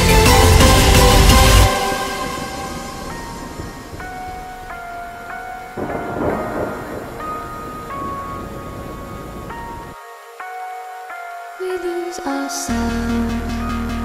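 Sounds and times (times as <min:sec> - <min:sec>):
bass: 0:00.0 - 0:02.2, 0:12.7 - 0:14.0
rumbling rain-like noise: 0:00.0 - 0:13.1
held synth notes: 0:00.0 - 0:14.0.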